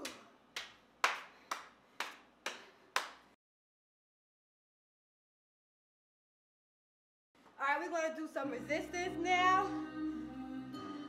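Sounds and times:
person clapping hands: 0.0s - 3.4s.

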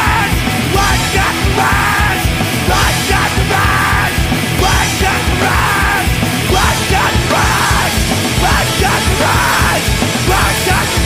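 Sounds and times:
loud rock music: 0.0s - 11.0s
person yelling vocals: 0.0s - 11.0s.

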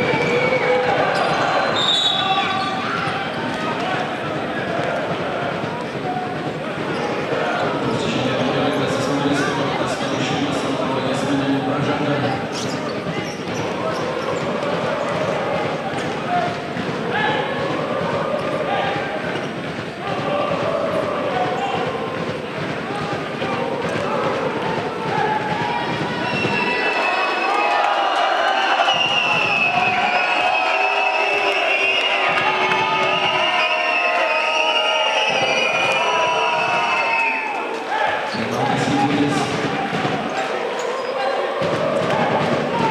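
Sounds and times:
voices talking: 0.0s - 25.4s, 37.9s - 42.9s
crowd shouting and cheering: 0.0s - 42.9s.

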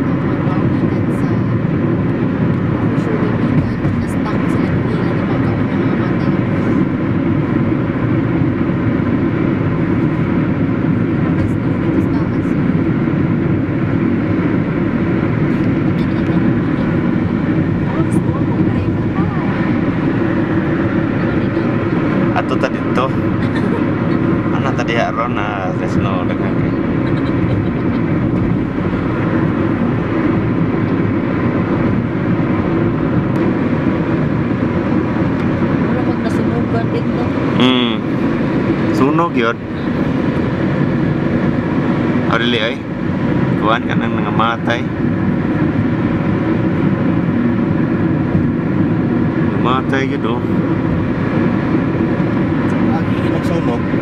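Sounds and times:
car road and engine noise: 0.0s - 54.0s
brief wavy pitched sounds: 37.1s - 38.2s.

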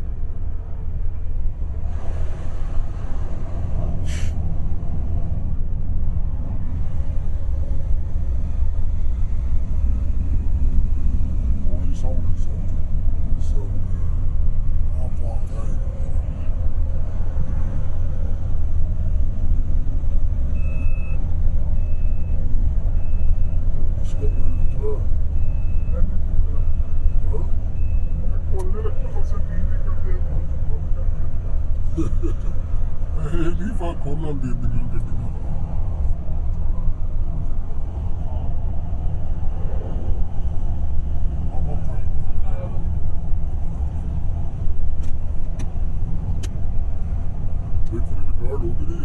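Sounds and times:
car engine and tyre rumble: 0.0s - 49.0s.

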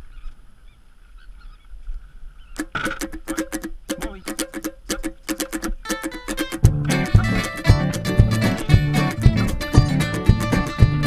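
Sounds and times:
strummed acoustic guitar: 2.6s - 11.0s.

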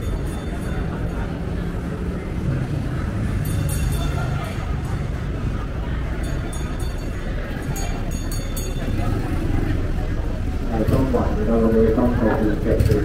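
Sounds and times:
motorbikes: 0.0s - 13.0s
road traffic rumble: 0.0s - 13.0s.

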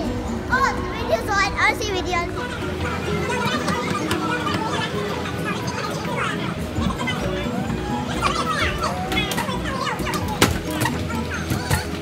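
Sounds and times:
background music: 0.0s - 12.0s
children's excited voices and squeals: 0.0s - 12.0s.

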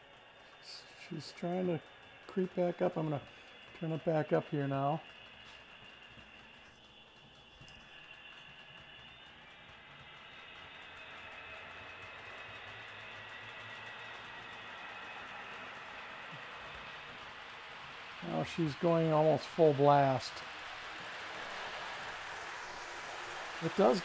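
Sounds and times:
model train motor whirring: 0.0s - 24.0s
thin high whine: 0.0s - 24.0s.

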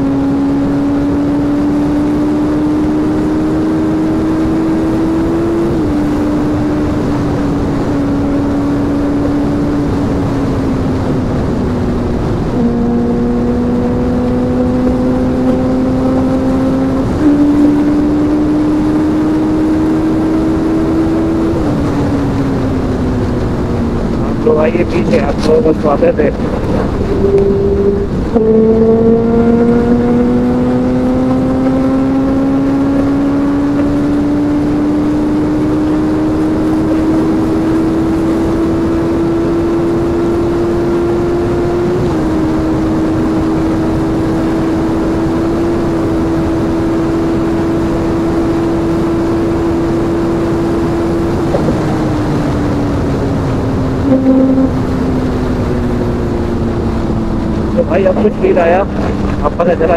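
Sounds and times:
motorcycle engine accelerating: 0.0s - 59.9s
wind rush on microphone: 0.0s - 59.9s.

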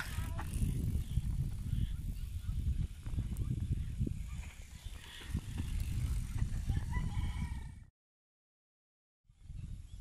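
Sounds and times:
mountain bike riding past: 0.0s - 7.9s
wind rumble on microphone: 0.0s - 7.9s, 9.3s - 10.0s.

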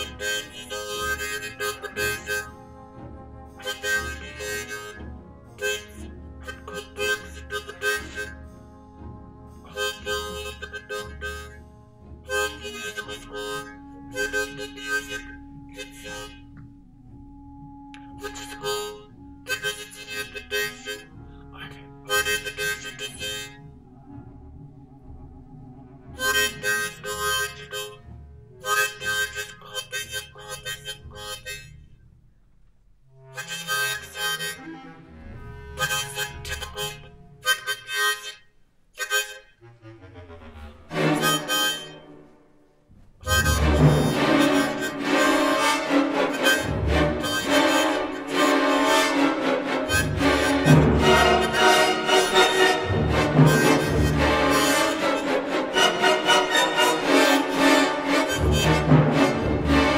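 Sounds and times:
harmonica playing: 0.0s - 32.1s, 33.0s - 59.9s.

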